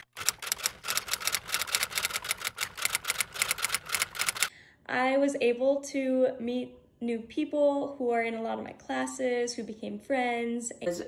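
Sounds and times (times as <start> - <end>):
typewriter keys clacking: 0.0 - 4.5.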